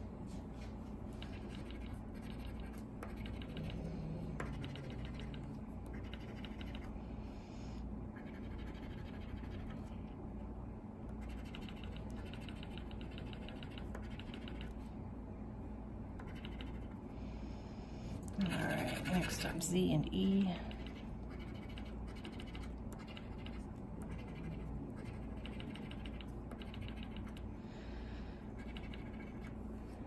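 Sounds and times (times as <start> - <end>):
coin scratching lottery ticket: 20.8 - 27.3.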